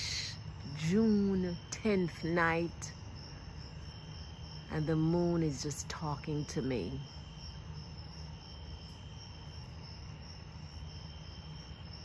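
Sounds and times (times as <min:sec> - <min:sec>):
night insects trilling: 0:00.0 - 0:12.0.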